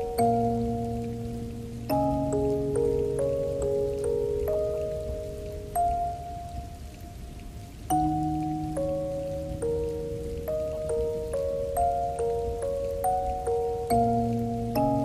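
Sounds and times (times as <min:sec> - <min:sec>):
music box melody: 0:00.0 - 0:15.0
rain patter: 0:00.0 - 0:15.0.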